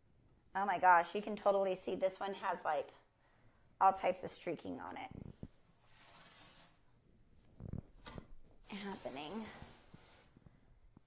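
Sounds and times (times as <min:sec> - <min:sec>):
faint rubbing on wood: 0:08.7 - 0:10.7.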